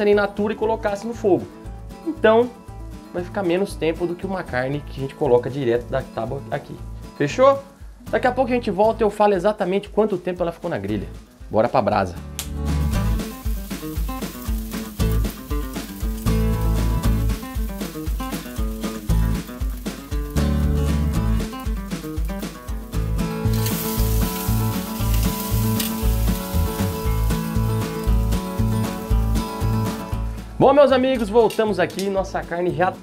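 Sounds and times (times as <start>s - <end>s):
background music with steady beat: 0.0s - 33.0s
steak sizzling on a grill: 12.8s - 30.4s.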